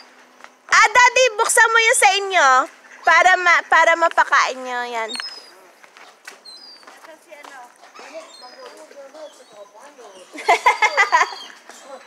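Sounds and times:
ducks quacking softly: 2.4s - 4.4s
faint voices: 2.4s - 12.0s
high bird chirps: 5.0s - 5.6s, 6.4s - 7.0s, 8.0s - 10.3s.

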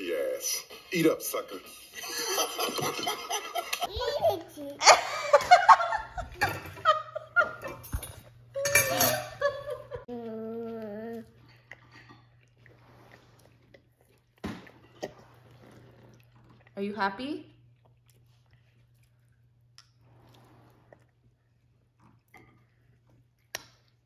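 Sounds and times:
laughter: 2.0s - 3.9s, 4.8s - 8.0s, 9.1s - 10.0s
eating sounds: 10.0s - 16.8s, 17.5s - 24.0s
toddler humming mmm: 10.1s - 11.5s.

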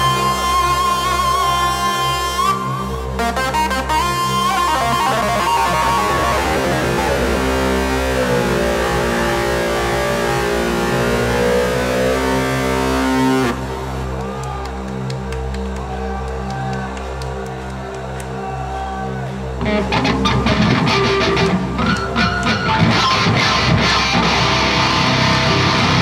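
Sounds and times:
sustained chords: 0.0s - 15.1s, 19.4s - 26.0s
heavy metal band playing live: 4.6s - 13.5s, 19.6s - 26.0s.

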